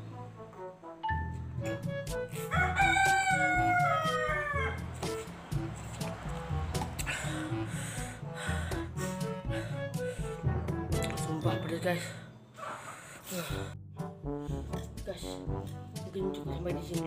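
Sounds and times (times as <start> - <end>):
background music with steady beat: 0.0 - 12.4, 13.2 - 17.0.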